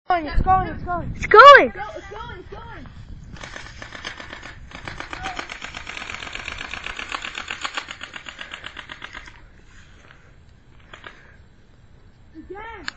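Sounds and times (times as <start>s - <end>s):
dirt bike engine running: 3.4s - 9.4s.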